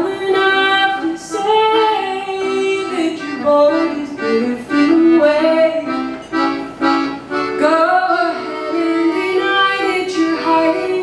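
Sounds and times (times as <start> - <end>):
woman singing long notes: 0.0 - 6.0, 7.6 - 11.0
accordion: 0.0 - 11.0.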